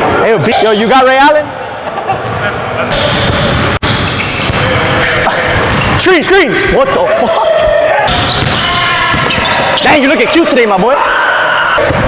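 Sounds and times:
players' voices: 0:00.0 - 0:12.0
basketball bouncing on gym court: 0:03.0 - 0:06.0, 0:07.6 - 0:09.8.

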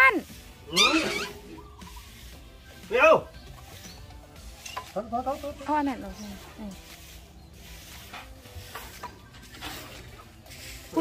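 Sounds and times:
faint outdoor background: 0:00.0 - 0:11.0.

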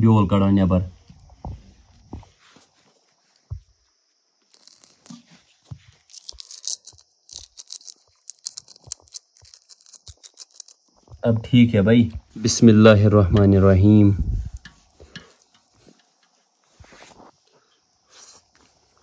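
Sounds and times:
chilli crackling being broken: 0:04.5 - 0:05.4, 0:06.0 - 0:10.8.

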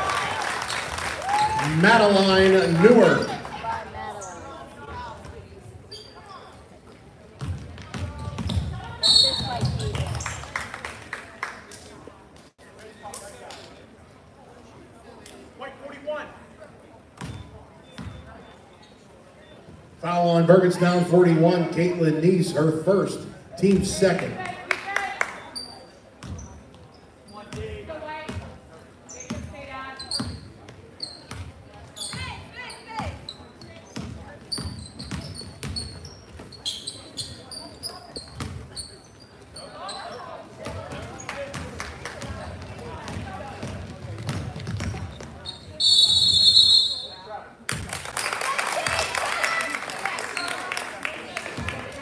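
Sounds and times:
crowd noise: 0:00.0 - 0:52.0
voices echoing in hall: 0:00.0 - 0:52.0
sneaker squeaks: 0:05.2 - 0:10.4, 0:17.2 - 0:19.9, 0:25.3 - 0:47.4
basketball bouncing on wooden floor: 0:07.4 - 0:08.8, 0:09.4 - 0:10.2, 0:40.6 - 0:45.4
referee's whistle: 0:09.0 - 0:09.8, 0:45.4 - 0:47.3.

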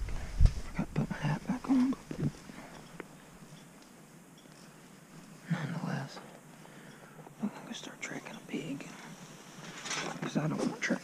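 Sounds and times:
man whispering: 0:00.7 - 0:02.5, 0:05.4 - 0:06.3, 0:07.3 - 0:09.0.

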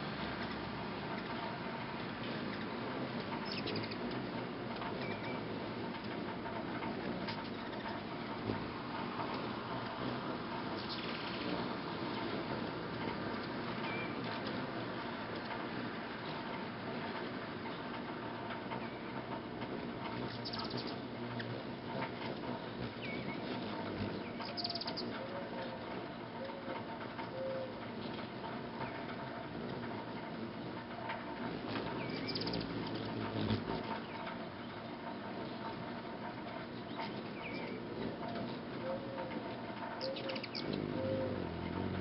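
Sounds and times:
steady noisy background: 0:00.0 - 0:42.0
hummingbird high chirps: 0:02.3 - 0:05.8, 0:06.9 - 0:14.7, 0:19.8 - 0:26.6, 0:31.5 - 0:35.9, 0:36.6 - 0:42.0.

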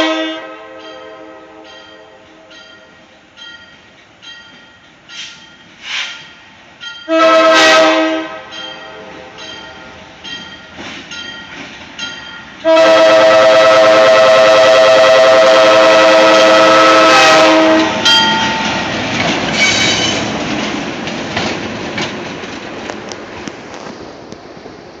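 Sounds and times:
locomotive air horn blast: 0:00.0 - 0:02.5, 0:07.1 - 0:09.5, 0:12.6 - 0:18.1
train wheels clicking over rail joints: 0:01.7 - 0:07.1, 0:08.5 - 0:12.7, 0:17.6 - 0:24.8.

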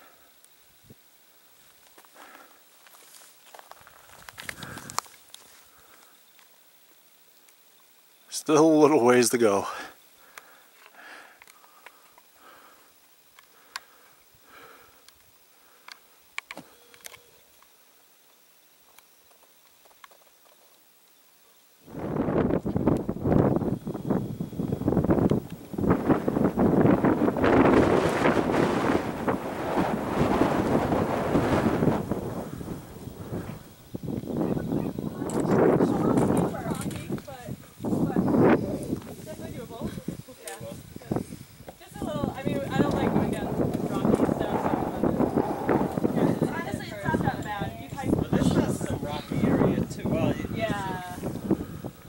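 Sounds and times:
faint ticks: 0:01.6 - 0:06.6, 0:10.2 - 0:21.2, 0:22.5 - 0:23.5, 0:25.2 - 0:25.8
strong wind on microphone: 0:21.9 - 0:52.0.

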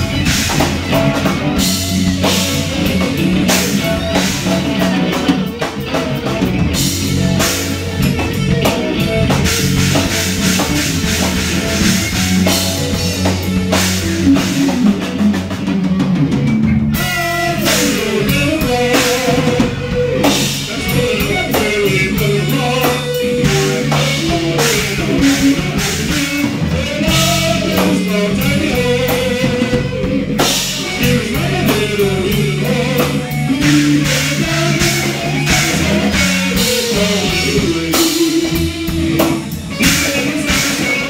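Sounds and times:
bending guitar lead line: 0:00.0 - 0:41.0
live rock band playing: 0:00.0 - 0:41.0.

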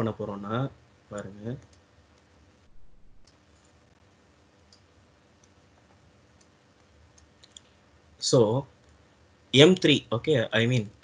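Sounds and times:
soft clicks: 0:01.1 - 0:02.4, 0:03.0 - 0:07.8, 0:08.8 - 0:09.0.

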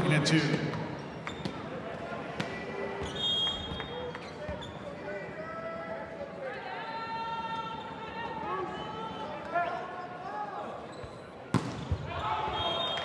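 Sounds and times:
voices in a gym: 0:00.0 - 0:11.5.

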